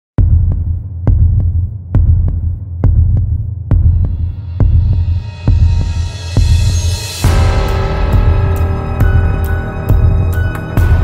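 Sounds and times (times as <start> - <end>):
heartbeat thumps: 0.2 - 11.0.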